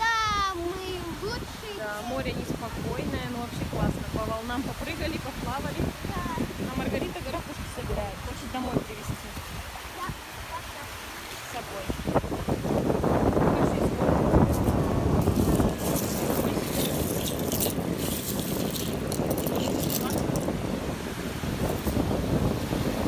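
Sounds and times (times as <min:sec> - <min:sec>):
small waves washing on sand: 0:00.0 - 0:23.0
wind on microphone: 0:00.0 - 0:23.0
seashells clinking: 0:15.2 - 0:20.5.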